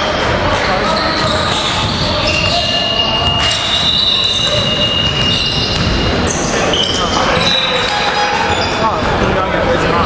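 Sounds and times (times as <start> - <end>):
basketball dribbled on wooden floor: 3.2 - 6.2.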